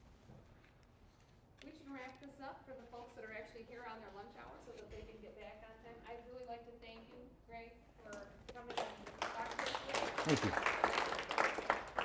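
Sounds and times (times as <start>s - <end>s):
applause: 8.6s - 12.0s.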